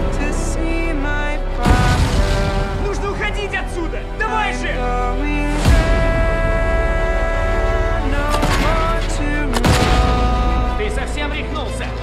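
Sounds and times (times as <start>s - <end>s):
orchestral music with held notes: 0.0s - 12.0s
heavy boom with low rumble: 1.6s - 3.2s.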